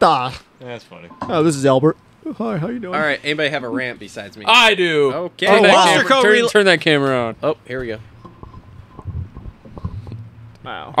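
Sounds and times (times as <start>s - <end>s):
microphone handling thumps: 8.1s - 10.5s.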